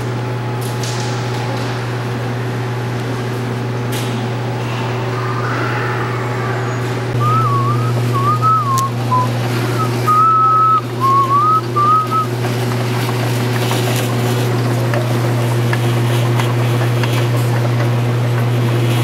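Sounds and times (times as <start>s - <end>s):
steady low hum: 1.4s - 15.8s
person whistling a tune: 7.2s - 12.3s.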